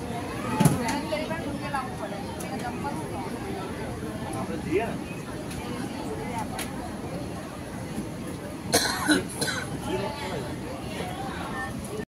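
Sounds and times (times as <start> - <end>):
faint background voices: 0.0 - 12.0
person coughing: 8.7 - 9.8.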